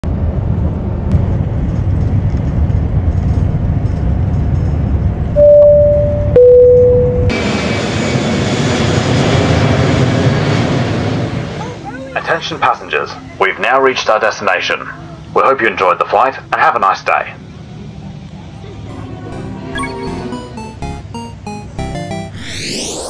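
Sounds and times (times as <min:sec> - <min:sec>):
vehicle rumble: 0:00.0 - 0:12.2
aircraft cabin noise: 0:01.1 - 0:22.1
two-note cabin chime: 0:05.4 - 0:07.4, 0:18.9 - 0:23.0.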